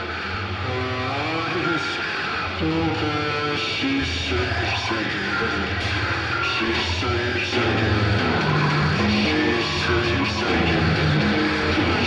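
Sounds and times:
noisy rock music: 0.0s - 12.0s
person singing: 0.0s - 12.0s.

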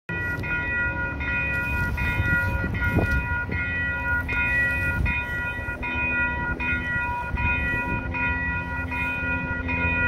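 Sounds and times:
railroad crossing bell ringing: 0.1s - 10.0s.

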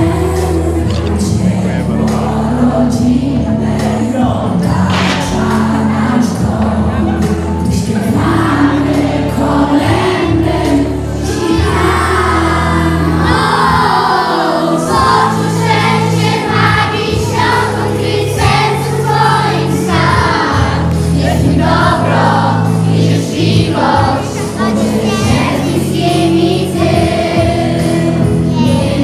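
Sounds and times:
children's choir singing: 0.0s - 29.0s
instrumental accompaniment: 0.0s - 29.0s.

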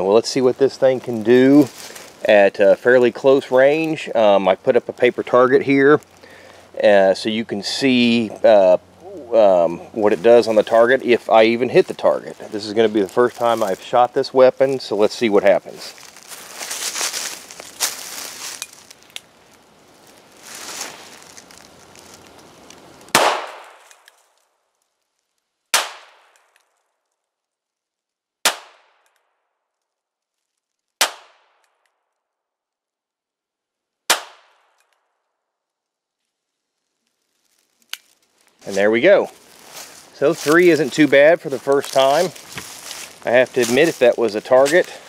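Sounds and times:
revolver gunshots: 23.1s - 23.8s.

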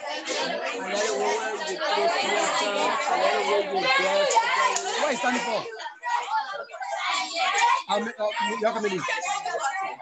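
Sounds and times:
young people chattering: 0.0s - 10.0s.

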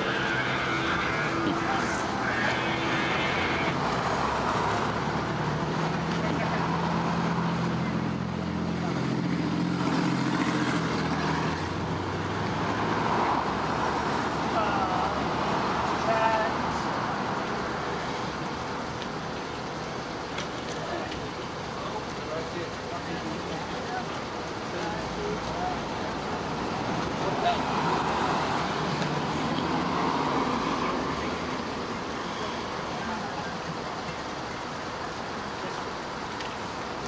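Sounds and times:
indistinct talking: 0.0s - 11.8s
road traffic passing: 0.0s - 37.0s
vehicle engine humming: 0.0s - 37.0s.

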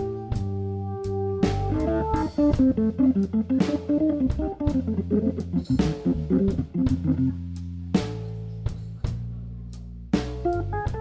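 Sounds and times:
electric guitar: 0.0s - 7.4s
bass guitar: 0.0s - 11.0s
drums: 0.0s - 11.0s.

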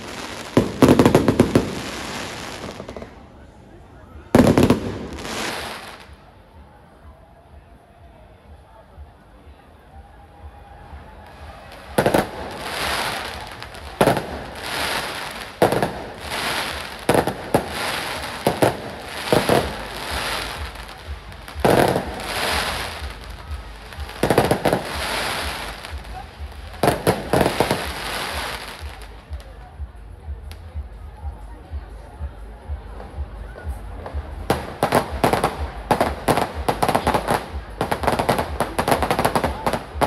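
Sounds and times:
firework bangs: 0.0s - 3.2s, 4.3s - 6.2s, 11.4s - 29.1s, 34.5s - 40.0s
hiss and crackle of fireworks: 0.0s - 40.0s.

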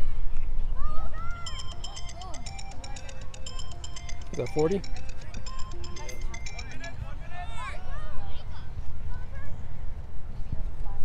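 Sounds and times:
rapid high-pitched chirping: 1.3s - 7.2s.

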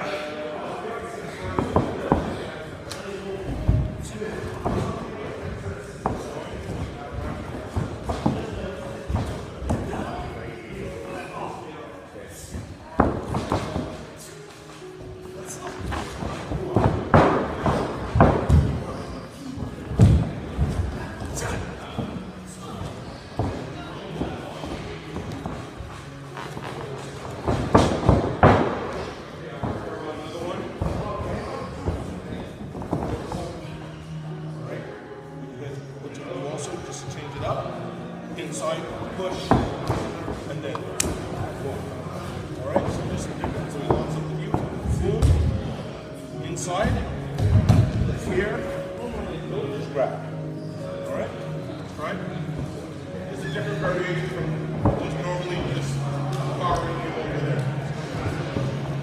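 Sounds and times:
background music: 0.0s - 59.0s
people talking: 48.1s - 58.8s.

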